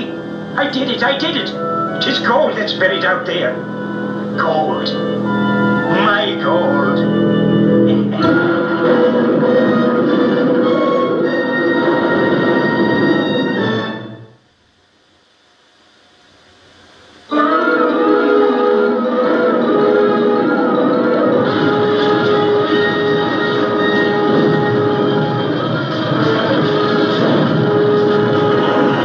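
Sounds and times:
wavering high tone: 0.0s - 13.8s
television soundtrack music: 0.0s - 29.0s.

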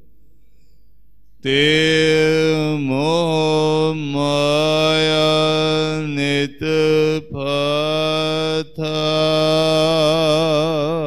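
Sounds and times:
man chanting: 1.4s - 11.0s.

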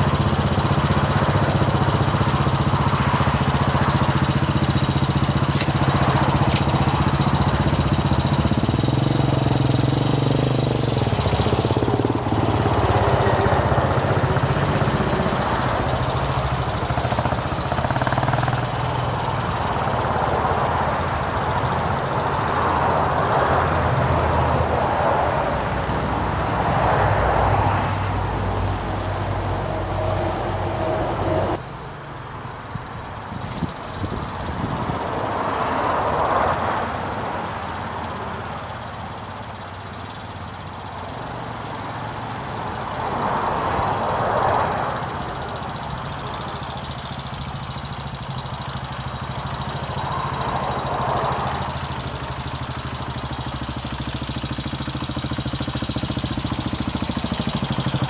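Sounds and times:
motorcycle engine running: 0.0s - 31.7s, 32.8s - 58.0s.

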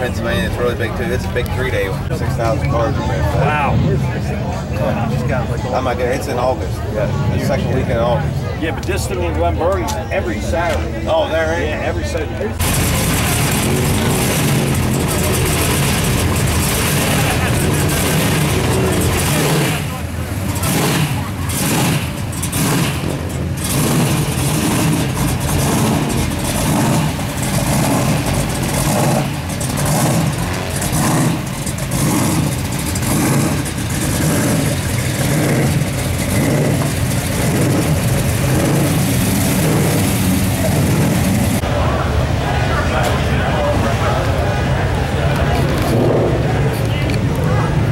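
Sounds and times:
people talking: 0.0s - 22.0s, 33.5s - 47.9s
loud engine lumpy idle: 12.6s - 47.9s.

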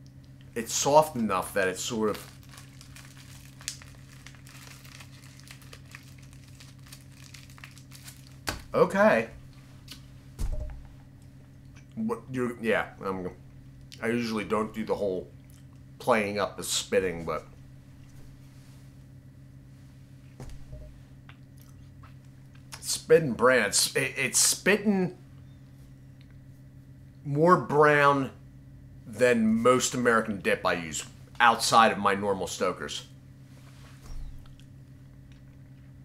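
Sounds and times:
low electrical hum: 0.0s - 36.0s.

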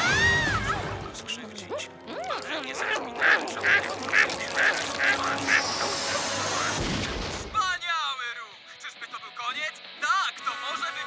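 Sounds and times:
cartoon gum-chewing squelches: 1.8s - 6.8s.

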